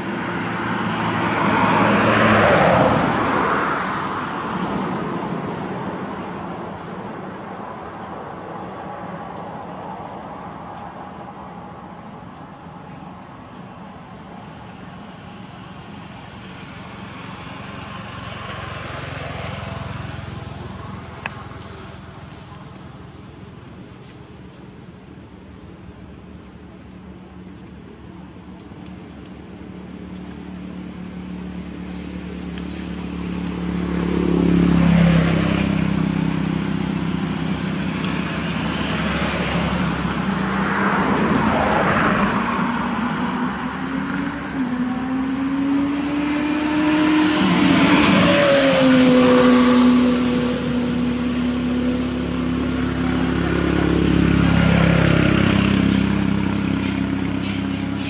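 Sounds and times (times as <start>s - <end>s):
vehicle engines passing: 0.0s - 58.0s.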